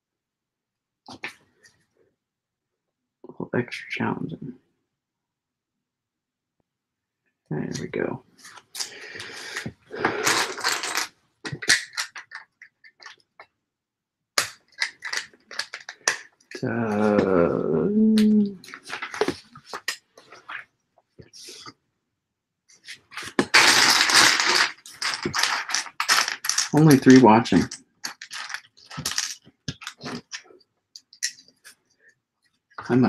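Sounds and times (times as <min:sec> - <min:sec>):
plastic pieces rattling: 0:08.8 - 0:13.2, 0:14.4 - 0:16.5, 0:18.6 - 0:20.6, 0:23.1 - 0:31.4
plastic toy bricks clicking: 0:10.2 - 0:13.2, 0:14.4 - 0:16.5, 0:23.3 - 0:31.4.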